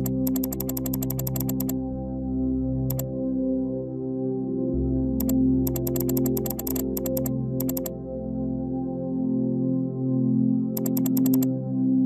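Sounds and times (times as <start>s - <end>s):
rapid computer mouse clicking: 0.0s - 1.8s, 5.2s - 7.9s, 10.8s - 11.5s
soft synthesizer music: 0.0s - 12.0s.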